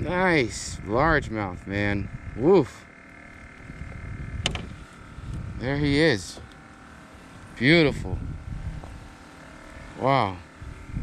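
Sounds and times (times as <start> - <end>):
low rumbling handling noise: 0.0 - 10.0
sharp click: 4.4 - 4.7.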